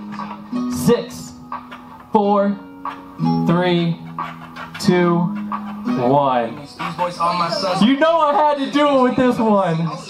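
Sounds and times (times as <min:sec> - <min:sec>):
plucked guitar: 0:00.0 - 0:07.0.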